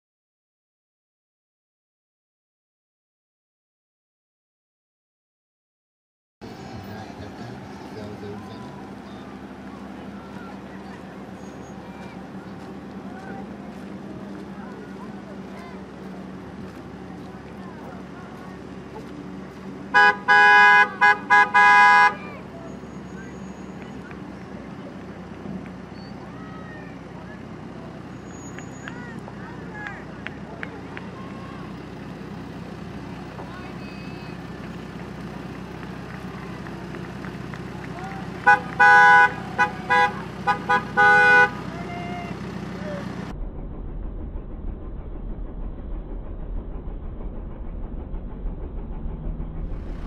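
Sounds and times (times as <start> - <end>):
vehicles idling: 6.4 - 50.0
car horns honking: 19.9 - 24.2, 38.2 - 42.4.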